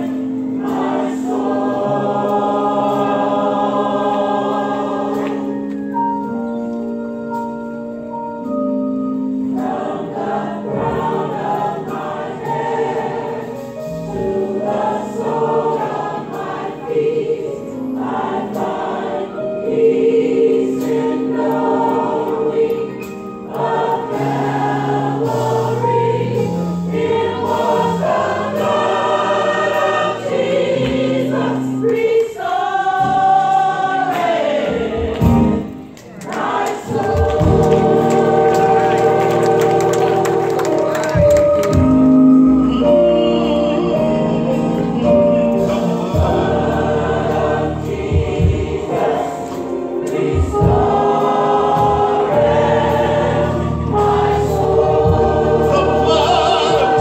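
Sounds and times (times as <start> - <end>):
organ accompaniment: 0.0 - 32.2, 33.0 - 57.0
gospel choir singing in harmony: 0.0 - 57.0.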